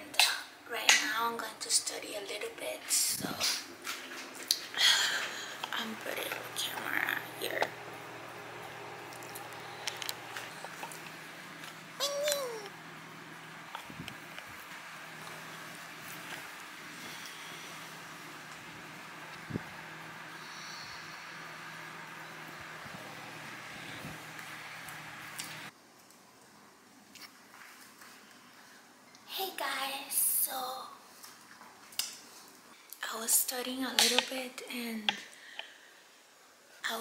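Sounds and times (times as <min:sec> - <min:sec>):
steady background hiss: 0:00.0 - 0:37.0.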